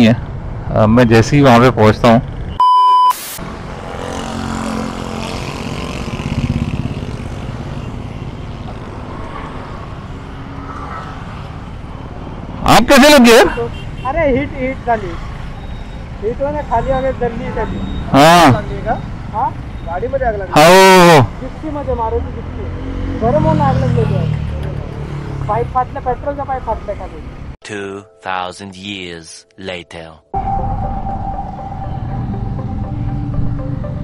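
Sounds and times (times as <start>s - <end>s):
man's loud voice: 27.6s - 30.2s
people talking: 27.6s - 30.2s
background music with held notes: 27.6s - 34.0s
vehicle rumble: 30.4s - 34.0s.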